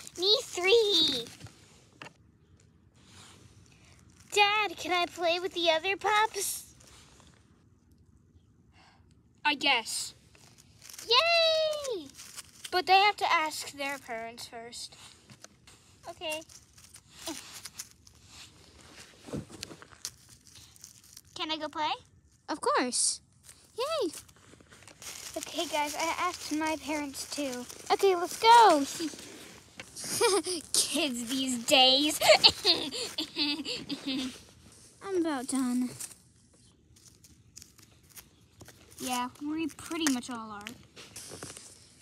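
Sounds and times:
faint clicks and rustles: 0.0s - 9.2s, 10.1s - 22.5s, 23.3s - 42.0s
snow crunching: 23.8s - 34.5s.

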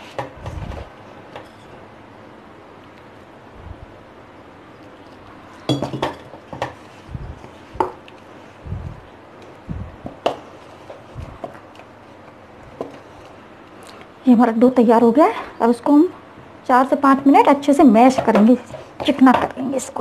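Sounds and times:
bowl knocking and clinking: 5.7s - 6.3s
dough mixed in steel bowl: 17.8s - 20.0s.

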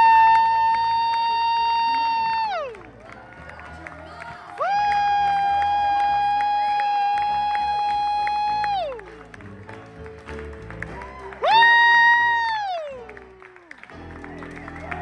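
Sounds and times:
people clapping: 0.0s - 15.0s
piano: 0.0s - 15.0s
upright bass: 0.0s - 15.0s.

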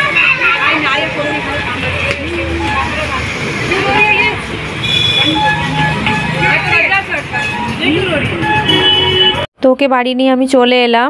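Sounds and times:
children calling and squealing: 0.0s - 8.8s
street noise hum: 0.0s - 10.7s.

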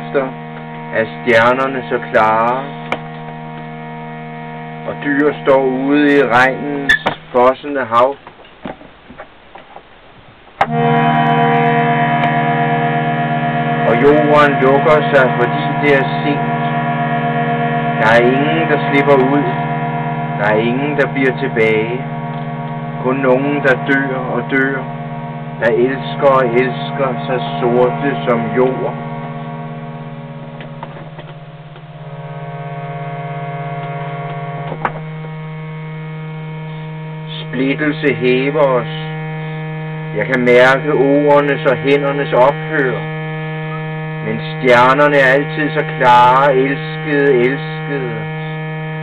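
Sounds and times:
harmonium chord: 0.0s - 8.0s, 10.6s - 49.0s.

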